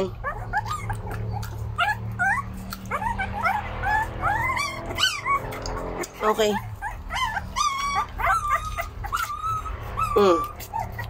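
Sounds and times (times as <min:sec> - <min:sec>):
puppies whimpering and squealing: 0:00.0 - 0:11.0.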